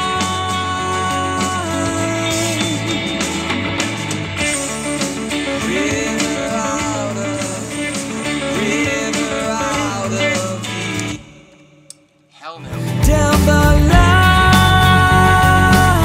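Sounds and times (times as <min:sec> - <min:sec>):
backing music with bass: 0:00.0 - 0:11.2, 0:12.6 - 0:16.0
overdriven electric guitar riff: 0:00.0 - 0:11.4, 0:12.7 - 0:16.0.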